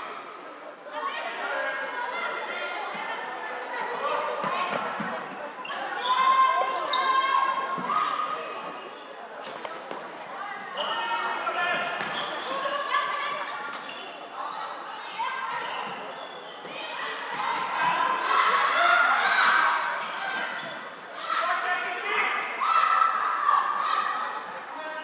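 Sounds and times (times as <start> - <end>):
people shouting: 17.3 - 20.2.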